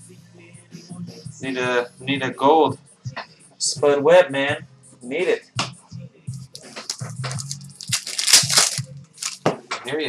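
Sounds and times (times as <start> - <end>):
foil wrapper tearing and crinkling: 6.9 - 9.4.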